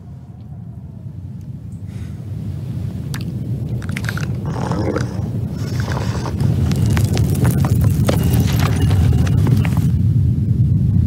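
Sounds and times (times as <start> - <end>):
deep stone rumbling: 3.0 - 10.2
falling stones and debris: 5.6 - 10.0.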